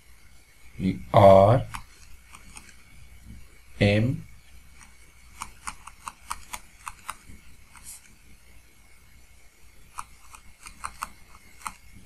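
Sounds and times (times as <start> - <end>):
faint steady hum: 0.0 - 12.0
stylus tapping on pen tablet: 4.8 - 8.0, 10.0 - 11.8.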